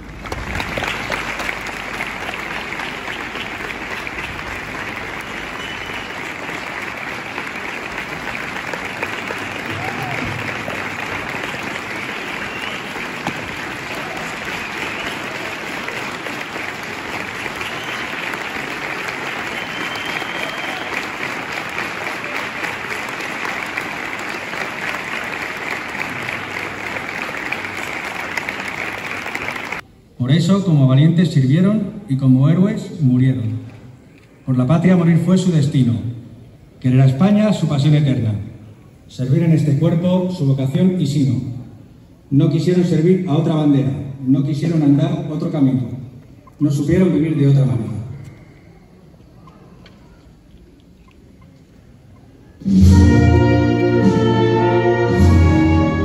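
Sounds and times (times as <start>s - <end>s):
crowd applauding: 0.0s - 29.9s.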